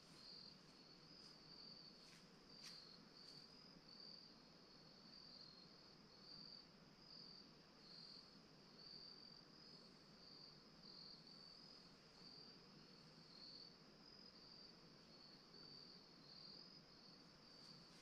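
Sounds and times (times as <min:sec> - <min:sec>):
low background hiss: 0:00.0 - 0:18.0.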